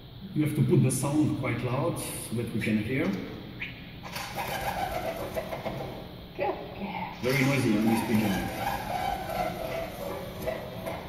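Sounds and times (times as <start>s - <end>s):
pigeon wings flapping: 4.1s - 6.1s, 7.2s - 11.0s.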